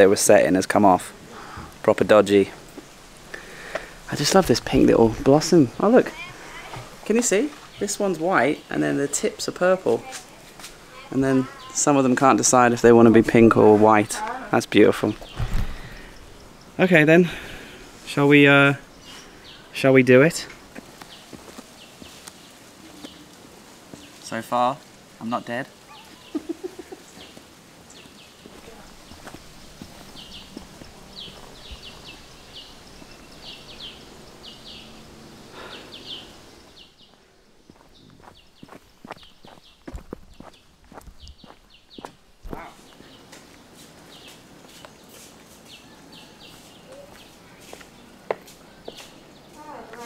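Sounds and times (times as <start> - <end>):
bird chirping: 0.0 - 23.4, 25.3 - 50.0.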